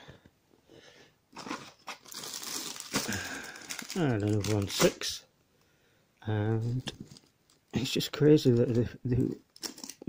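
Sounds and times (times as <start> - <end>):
plastic wrappers crinkling: 1.4 - 5.2, 6.6 - 10.0.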